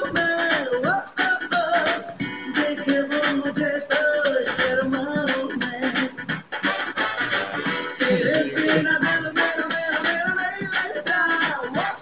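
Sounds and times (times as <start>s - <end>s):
melody over a steady beat: 0.0s - 12.0s.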